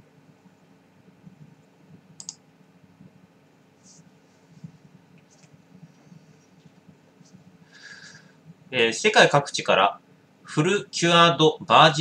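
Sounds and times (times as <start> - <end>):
sharp little clicks: 2.2 - 2.4.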